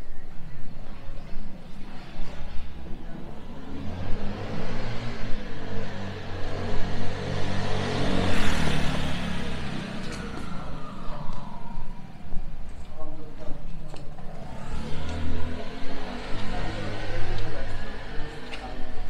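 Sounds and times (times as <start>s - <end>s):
vehicle passing: 3.2s - 12.0s, 14.3s - 19.0s.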